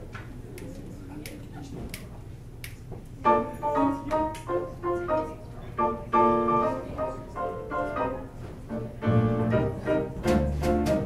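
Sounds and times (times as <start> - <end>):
low room murmur: 0.0 - 11.0
finger snaps: 0.6 - 2.8.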